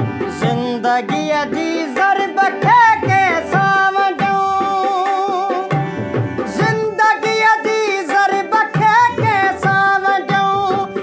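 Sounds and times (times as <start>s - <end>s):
tabla beating: 0.0s - 11.0s.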